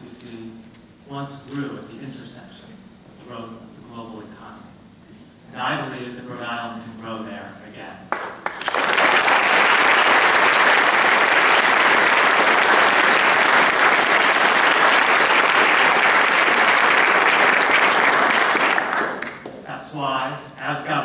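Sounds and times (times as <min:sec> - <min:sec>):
person speaking: 0:05.4 - 0:08.1
audience applauding: 0:08.1 - 0:19.6.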